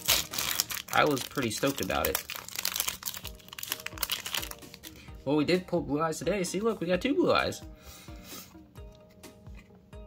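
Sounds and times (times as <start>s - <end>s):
foil wrapper crinkling: 0.0s - 5.0s
soft music with low beat: 0.0s - 10.0s.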